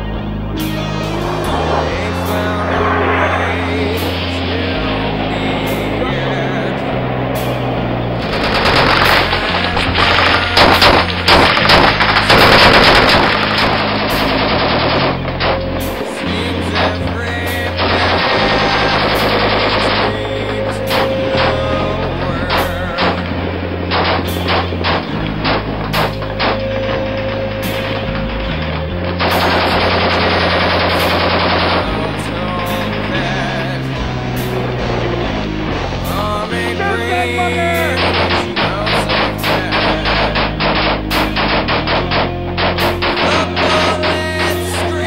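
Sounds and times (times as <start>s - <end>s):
rock music with heavy bass: 0.0s - 45.0s
rifle and machine gun fire: 8.3s - 15.8s, 29.2s - 33.6s, 37.5s - 44.9s
automatic gunfire bursts: 10.2s - 15.0s.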